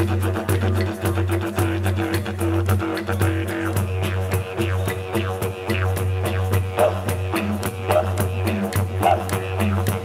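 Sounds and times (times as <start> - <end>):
quick rhythmic pulse: 0.0 - 10.0.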